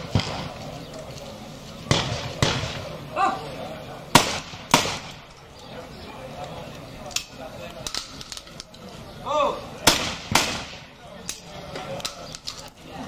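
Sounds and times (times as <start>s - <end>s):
shotgun shots: 0.0s - 0.6s, 1.9s - 2.9s, 4.1s - 5.2s, 9.9s - 10.9s.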